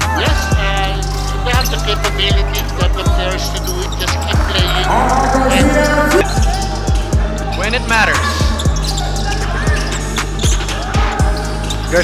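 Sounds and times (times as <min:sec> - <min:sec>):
background music with bass line: 0:00.0 - 0:12.0
sneakers squeaking: 0:00.0 - 0:12.0.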